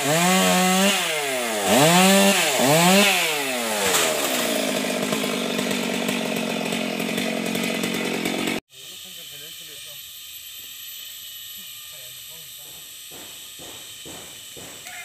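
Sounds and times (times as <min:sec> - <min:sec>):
chainsaw cutting wood: 0:00.0 - 0:15.0.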